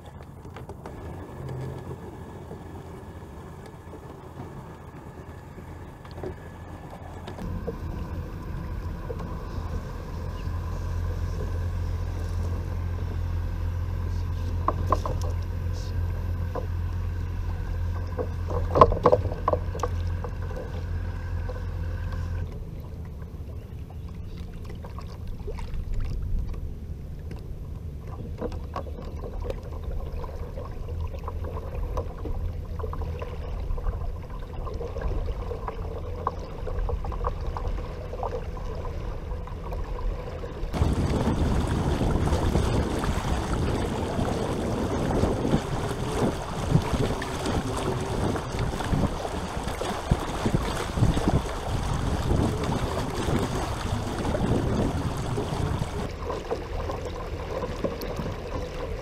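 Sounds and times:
water moving along hull: 0.0 - 59.0
wind on microphone: 40.7 - 56.2.

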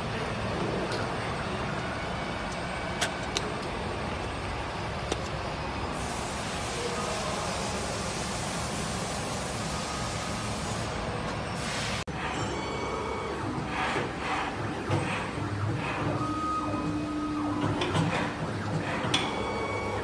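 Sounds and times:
machine motor whine: 7.6 - 20.0.

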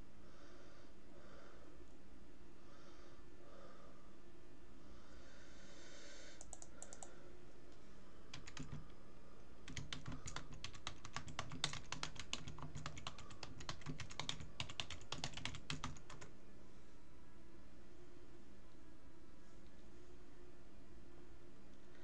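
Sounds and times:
computer keyboard typing: 6.4 - 7.2, 8.3 - 8.9, 9.7 - 16.3.

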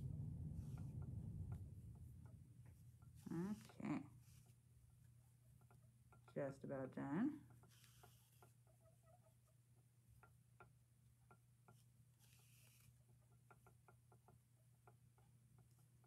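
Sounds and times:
low hum: 0.0 - 7.6
soft rustle of yarn: 0.0 - 10.3, 11.6 - 14.4
faint ticks of stitching: 3.1 - 16.0.

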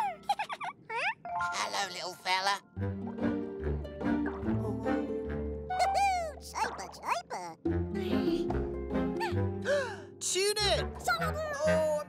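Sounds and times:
background music: 1.3 - 12.0.

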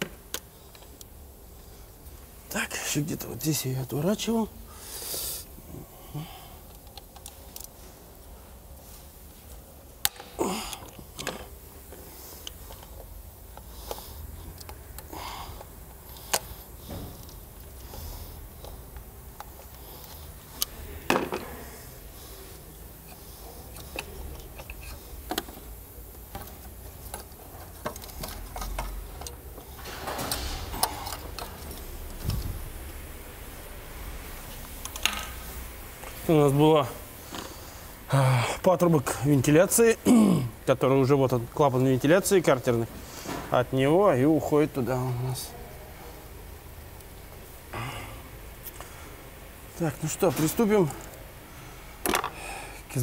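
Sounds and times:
breathy hiss: 0.4 - 41.0, 42.5 - 53.0.

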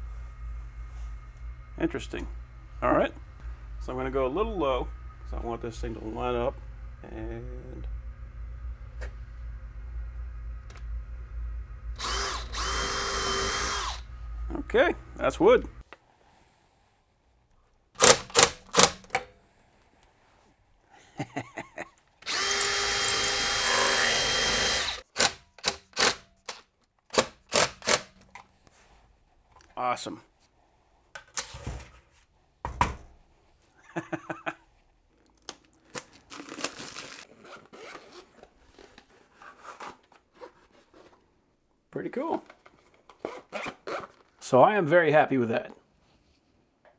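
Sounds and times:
cordless drill driving screw: 12.0 - 14.0, 22.2 - 28.1
zipper being pulled open: 37.2 - 41.2, 43.2 - 44.3.

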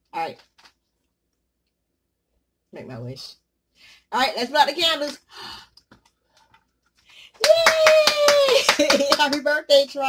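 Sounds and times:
hands clapping: 7.0 - 10.0
woman cheering: 7.4 - 9.3.

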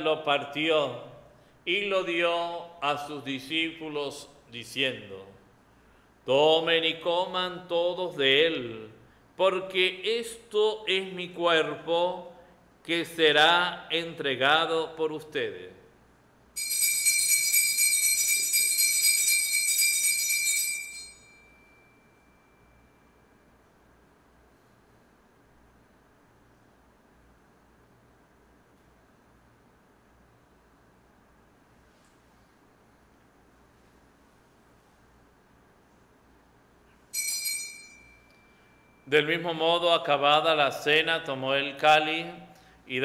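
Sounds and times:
altar bells jingling: 16.6 - 22.9, 37.1 - 39.1.

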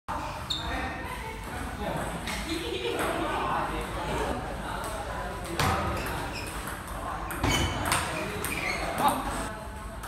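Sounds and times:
voices murmuring in echoing hall: 0.1 - 10.0.

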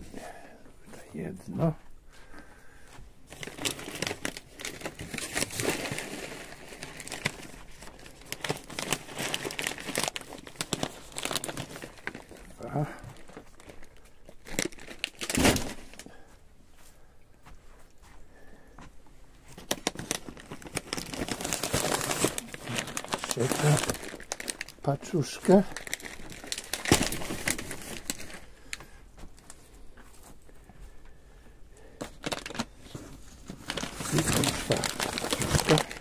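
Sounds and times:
plastic and cardboard rustling: 3.3 - 16.3, 19.4 - 31.0, 31.9 - 36.0.

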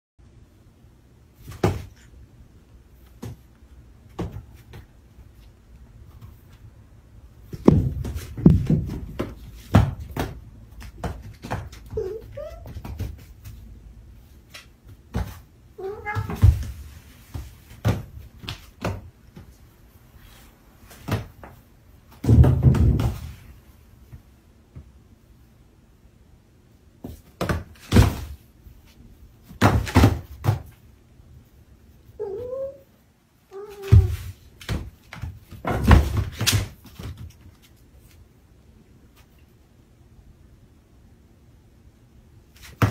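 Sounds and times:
cats thumping onto floor: 7.4 - 13.6, 14.9 - 19.5, 20.9 - 23.4, 33.8 - 37.4
cat meowing: 12.0 - 12.7, 15.8 - 16.5, 32.2 - 32.9
cats scrambling thumps: 16.0 - 19.5.

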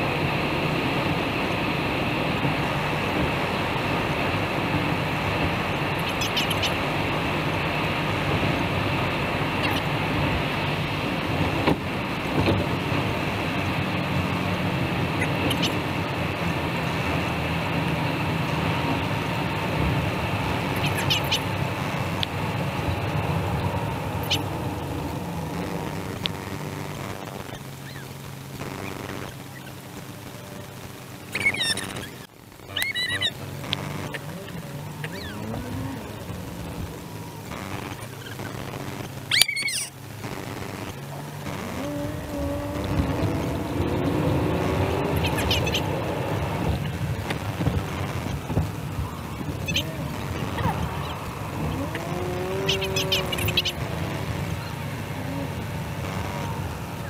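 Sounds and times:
car road and engine noise: 0.0 - 57.0
high-pitched squeal: 31.3 - 57.0.

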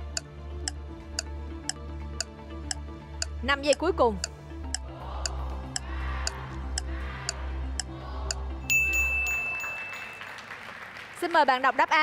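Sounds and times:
timer ticking: 0.0 - 9.4
low electronic music: 0.0 - 9.5
bright sustained chime: 8.7 - 10.4.

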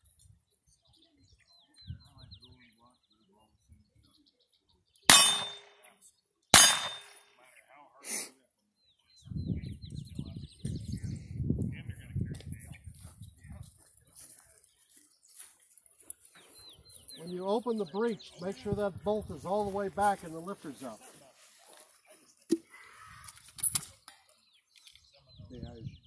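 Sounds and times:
gunshots with ringing tail: 5.1 - 5.8, 6.6 - 7.2
faint metallic clang: 5.1 - 5.9.

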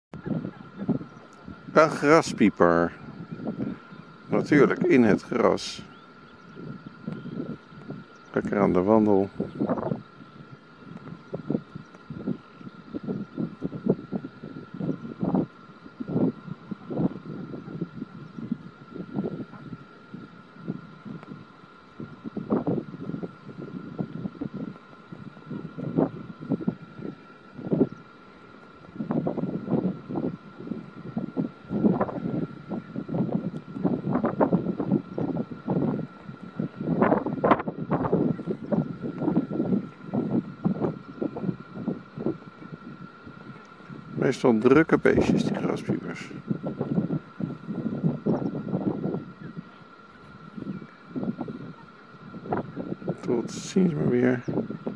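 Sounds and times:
faint high whine: 0.1 - 54.9
wind buffeting microphone: 0.1 - 54.9.

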